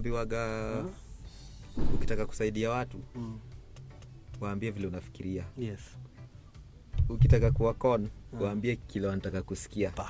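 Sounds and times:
man speaking: 0:00.0 - 0:01.0, 0:02.0 - 0:03.4, 0:07.1 - 0:10.0
background music with bass line: 0:00.0 - 0:10.0.

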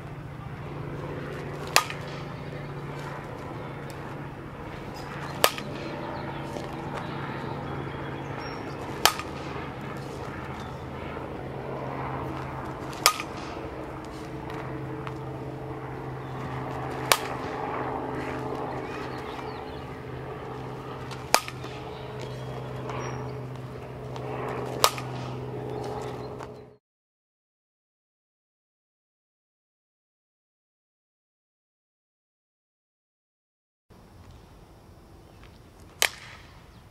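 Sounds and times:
steady low hum: 0:00.0 - 0:26.8
softball bat striking ball: 0:01.3 - 0:02.4, 0:04.8 - 0:06.8, 0:08.5 - 0:10.7, 0:12.2 - 0:15.2, 0:16.7 - 0:17.5, 0:21.0 - 0:25.5, 0:36.0 - 0:36.4.

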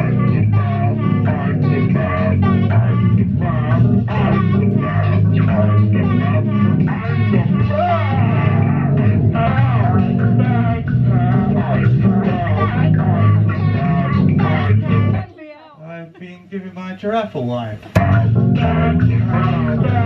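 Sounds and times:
electronic synthesizer music: 0:18.0 - 0:20.0.

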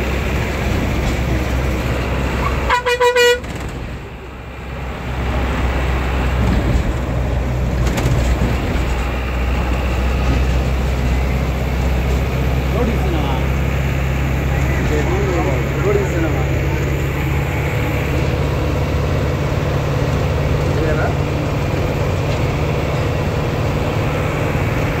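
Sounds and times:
bus engine and road drone: 0:00.0 - 0:25.0.

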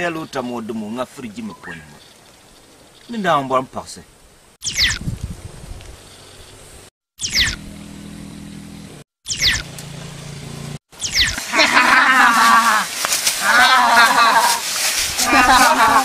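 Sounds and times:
voices chanting: 0:11.6 - 0:16.0.

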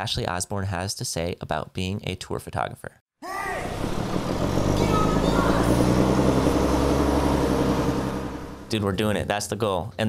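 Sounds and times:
vehicle engine running: 0:03.7 - 0:08.8.

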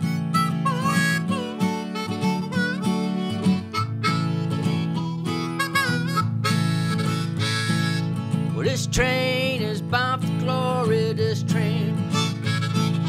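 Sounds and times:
acoustic guitar: 0:00.0 - 0:13.0
harmonica melody: 0:00.0 - 0:13.0.

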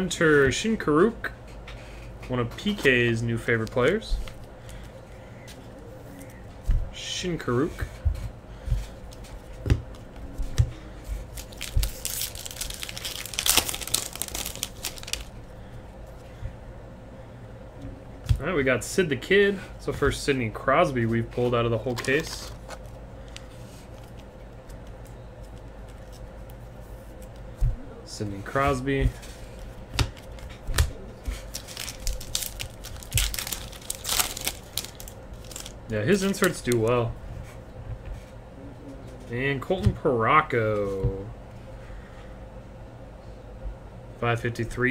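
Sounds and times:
foil wrapper crinkling and tearing: 0:11.2 - 0:15.3, 0:21.8 - 0:26.2, 0:31.4 - 0:37.0.

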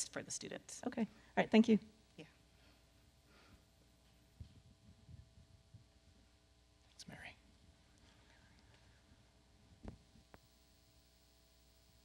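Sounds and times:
faint whisper: 0:07.0 - 0:09.2.

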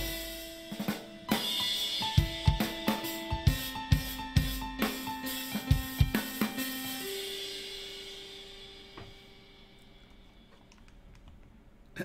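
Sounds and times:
drum kit played with sticks: 0:00.0 - 0:09.7.

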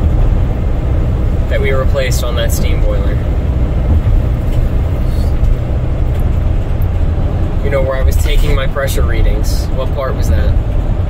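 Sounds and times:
van engine and road noise: 0:00.0 - 0:11.0.

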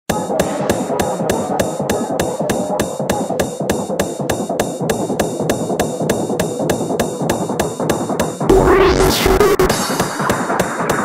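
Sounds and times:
hardcore electronic music: 0:00.1 - 0:11.0.

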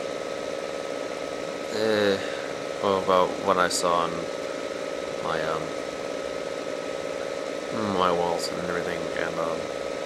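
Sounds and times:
background hum: 0:00.0 - 0:10.0.

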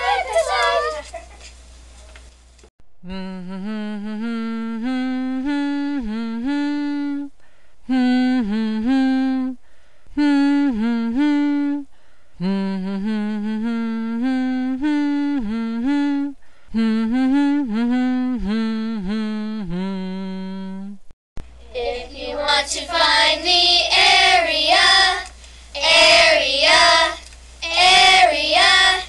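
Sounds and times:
person humming a melody: 0:03.0 - 0:21.1.

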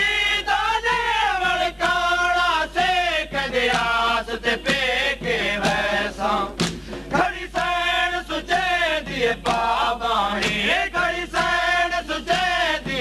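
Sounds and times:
chest beating thumps: 0:02.8 - 0:07.8.

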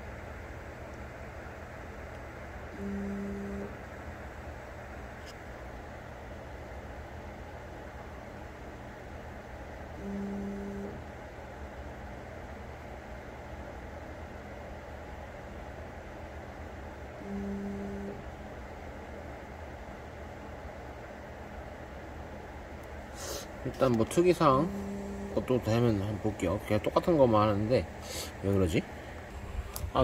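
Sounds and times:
steady background hum: 0:00.0 - 0:30.0.

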